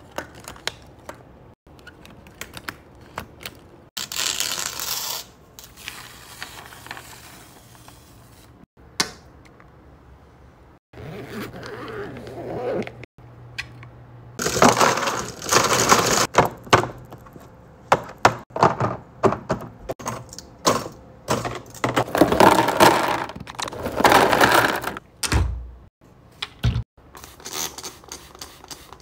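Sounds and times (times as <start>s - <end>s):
zipper on fabric bag opening: 11.0s - 13.1s
plastic pieces clattering into tray: 14.4s - 16.4s, 20.0s - 25.0s.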